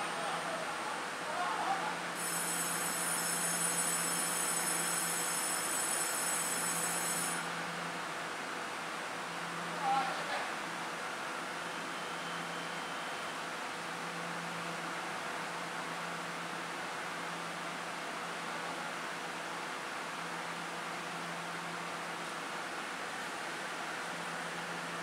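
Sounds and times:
machinery hum and hiss: 0.0s - 25.0s.

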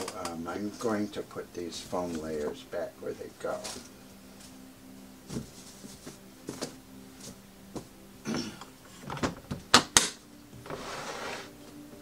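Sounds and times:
case sliding on table: 10.6s - 11.5s.

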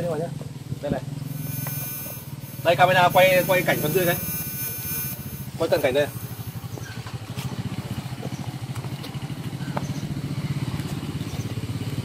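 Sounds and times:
small engine running: 1.2s - 12.0s.

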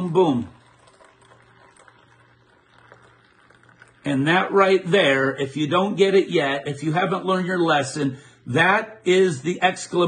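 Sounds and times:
coffee pouring between paper cups: 0.0s - 5.3s.

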